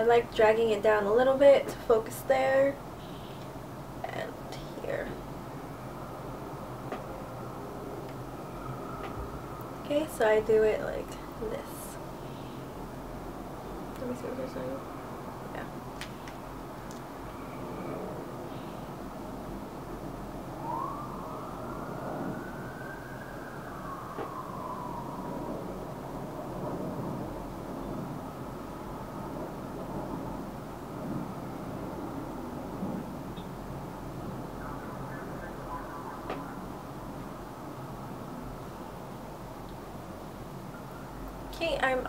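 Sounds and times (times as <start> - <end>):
steady background noise: 0.0 - 42.0
faint siren wailing: 4.0 - 12.9, 17.1 - 39.3, 40.6 - 41.5.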